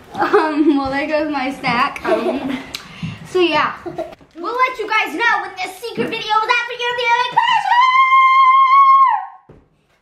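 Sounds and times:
boy screaming: 0:07.3 - 0:09.4.

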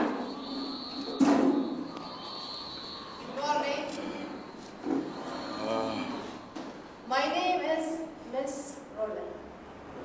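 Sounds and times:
background noise: 0:00.0 - 0:10.0
indistinct voice: 0:05.1 - 0:06.5.

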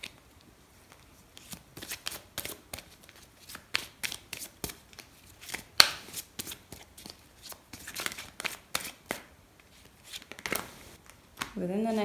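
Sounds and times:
cards being shuffled: 0:00.8 - 0:12.0.

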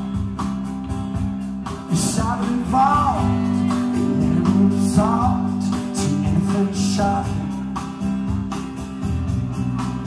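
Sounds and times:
acoustic guitar strummed: 0:00.0 - 0:10.0
sustained bass notes: 0:00.0 - 0:10.0
man singing: 0:01.8 - 0:08.0.

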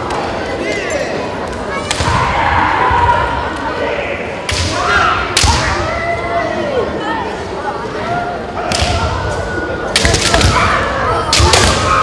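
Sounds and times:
echoing shouts: 0:01.8 - 0:07.3, 0:10.2 - 0:12.0.

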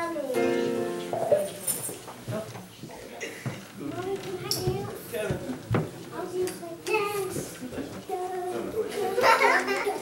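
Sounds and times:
children chattering and calling out: 0:00.0 - 0:01.6, 0:03.2 - 0:10.0.

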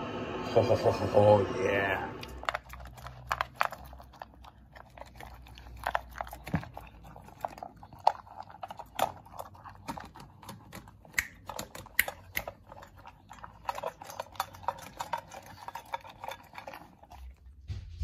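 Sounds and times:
puppy crunching kibble: 0:01.6 - 0:18.0.

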